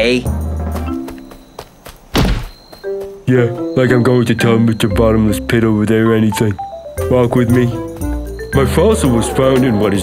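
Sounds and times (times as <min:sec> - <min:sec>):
light background music: 0:00.0 - 0:01.9, 0:02.6 - 0:10.0
deep thunk: 0:02.1 - 0:02.6.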